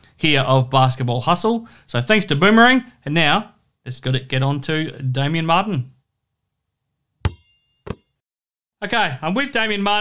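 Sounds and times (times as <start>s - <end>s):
sharp knocks with high ring: 7.2s - 8.2s.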